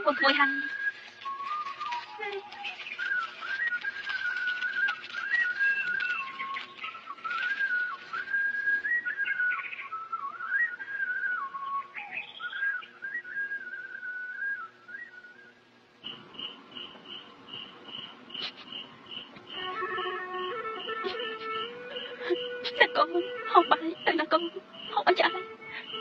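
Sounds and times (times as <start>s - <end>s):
whistled melody: 0.0s - 26.0s.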